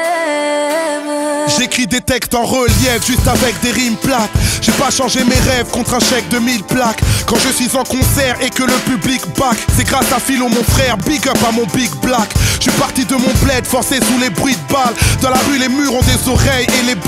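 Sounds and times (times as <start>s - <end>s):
rapping over a beat: 0.0s - 17.0s.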